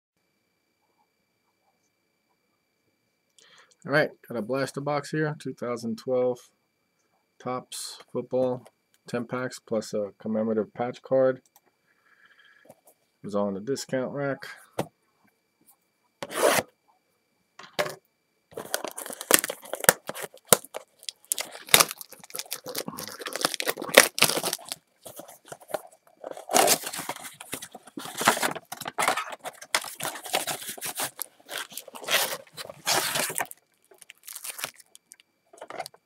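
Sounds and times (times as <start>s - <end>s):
cardboard box opening: 16.2s - 16.7s, 18.6s - 34.8s
foil packs crinkling: 18.5s - 36.0s
shrink wrap tearing: 18.6s - 35.2s.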